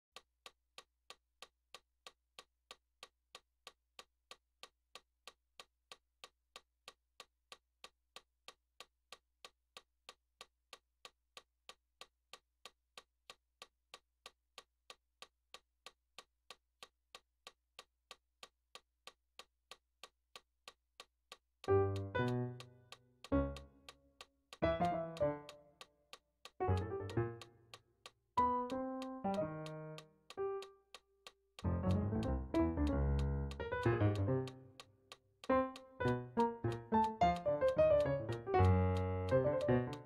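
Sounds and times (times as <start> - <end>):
metronome clicking: 21.6 - 40.0.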